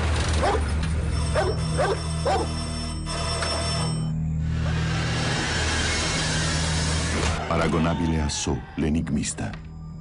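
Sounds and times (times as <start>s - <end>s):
low music drone: 0.0s - 7.6s.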